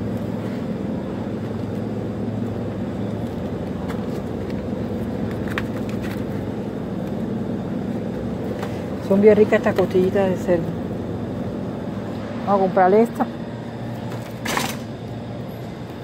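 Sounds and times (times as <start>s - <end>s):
refrigerated display case humming: 0.0s - 16.0s.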